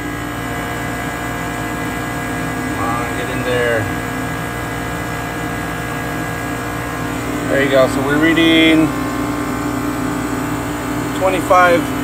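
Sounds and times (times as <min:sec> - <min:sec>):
rooftop hvac unit humming: 0:00.0 - 0:12.0.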